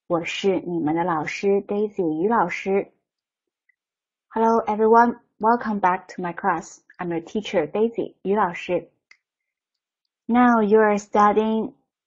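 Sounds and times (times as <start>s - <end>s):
woman speaking: 0.0s - 2.9s, 4.4s - 8.8s, 10.3s - 11.7s.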